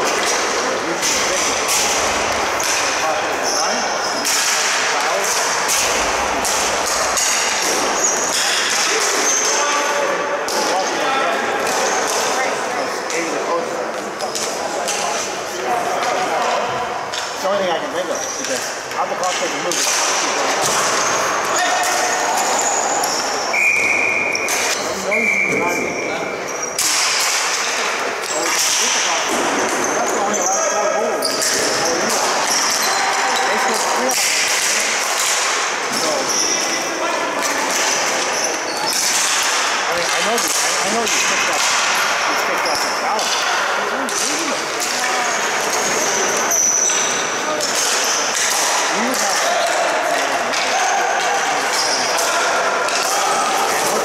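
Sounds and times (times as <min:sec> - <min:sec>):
sticks hitting ball: 0:00.0 - 0:03.4, 0:04.2 - 0:09.2, 0:33.8 - 0:36.0, 0:43.2 - 0:46.0
players shouting indistinctly: 0:19.9 - 0:24.8, 0:44.1 - 0:54.0.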